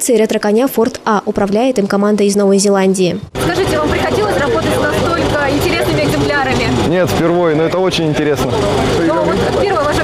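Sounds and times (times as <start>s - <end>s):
low background hum: 0.0s - 10.0s
people talking: 0.0s - 10.0s.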